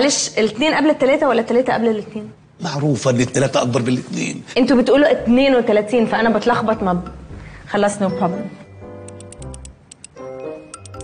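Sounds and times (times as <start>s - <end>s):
background music sustained tones: 5.3s - 11.0s.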